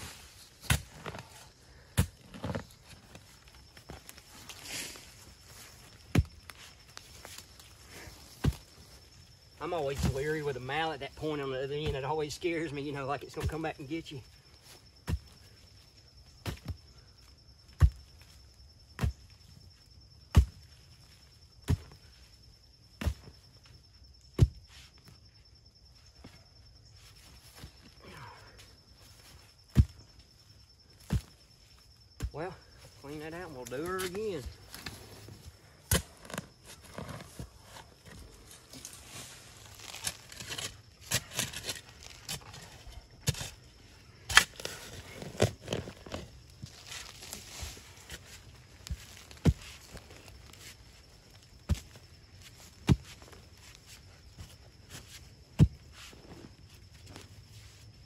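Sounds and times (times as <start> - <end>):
shovel scraping dirt: 0.0 - 8.8, 11.2 - 13.9, 33.6 - 57.3
mattock striking dirt: 0.0 - 22.2, 22.8 - 25.2, 29.0 - 30.2, 30.9 - 57.3.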